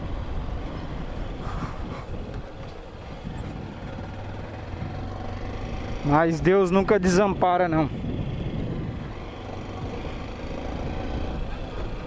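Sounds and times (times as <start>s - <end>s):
wind noise: 0.0s - 5.2s, 6.8s - 12.0s
motorcycle engine riding along: 0.0s - 12.0s
road noise: 0.0s - 12.0s.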